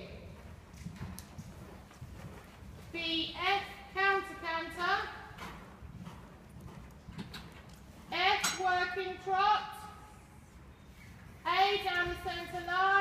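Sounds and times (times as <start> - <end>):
faint horse hoofbeats: 0.0 - 9.2.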